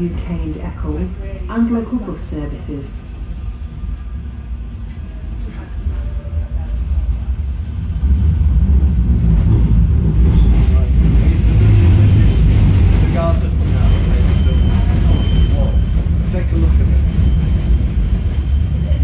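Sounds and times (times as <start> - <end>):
tram rumbling on track: 0.0 - 19.0.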